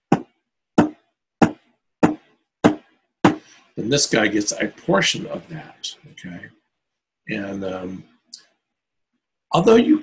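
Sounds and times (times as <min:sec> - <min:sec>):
steady tapped knocks: 0:00.0 - 0:03.5.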